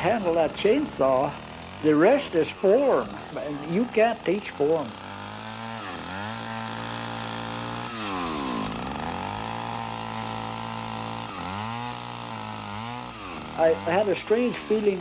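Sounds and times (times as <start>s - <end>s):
chainsaw cutting wood: 0.0s - 15.0s.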